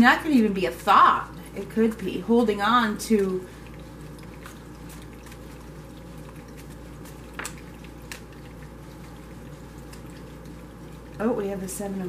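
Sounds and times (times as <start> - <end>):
water fountain trickling: 0.2 - 12.0.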